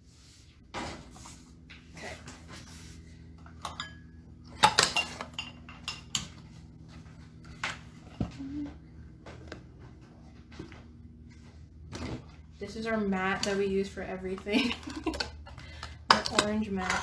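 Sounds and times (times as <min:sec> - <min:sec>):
dishes and cutlery clinking: 0:03.6 - 0:06.4.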